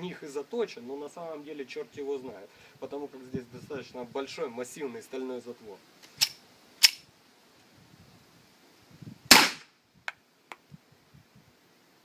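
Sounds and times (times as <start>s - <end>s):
gas pistol shot: 9.3s - 9.7s.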